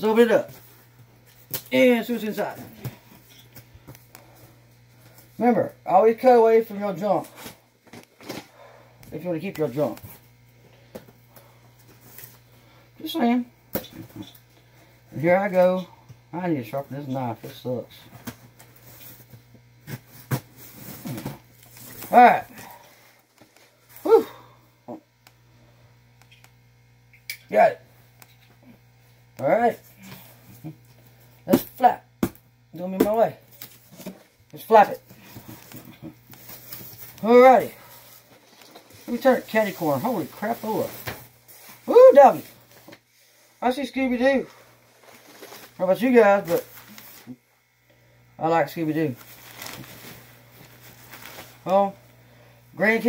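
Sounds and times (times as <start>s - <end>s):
steady low hum: 0.0s - 53.0s.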